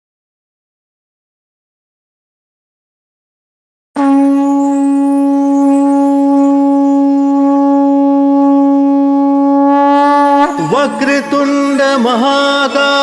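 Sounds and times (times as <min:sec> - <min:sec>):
conch shell blown: 0:04.0 - 0:13.0.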